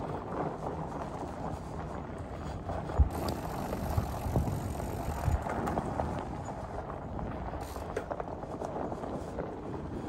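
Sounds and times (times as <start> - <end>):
bike tyres rumbling on dirt: 0.0 - 10.0
wind on microphone: 0.0 - 10.0.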